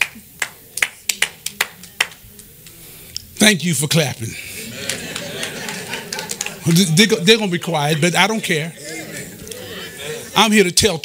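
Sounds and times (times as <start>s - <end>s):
scattered applause: 0.0s - 2.5s, 4.6s - 7.0s.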